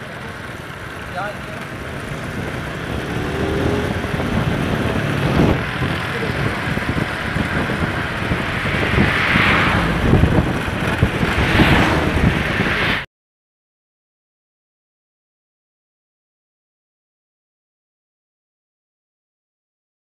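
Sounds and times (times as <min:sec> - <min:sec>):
motorcycle engine: 0:00.0 - 0:13.0
wind rushing over microphone: 0:02.0 - 0:13.1.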